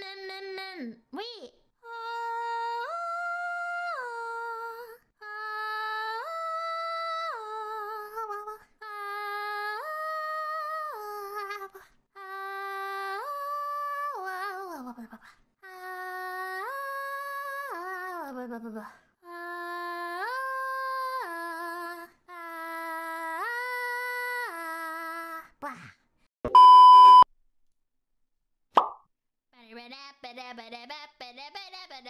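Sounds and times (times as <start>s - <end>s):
loud electronic beep: 26.5s - 27.2s
short pop: 28.8s - 29.0s.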